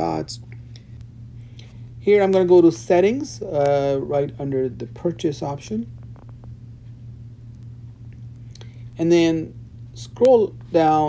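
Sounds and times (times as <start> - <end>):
faint background hiss: 0.0 - 11.0
low electrical hum: 0.0 - 11.0.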